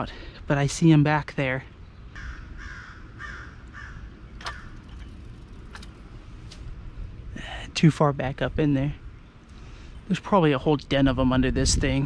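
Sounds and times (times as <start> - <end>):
bird calling: 1.8 - 5.8.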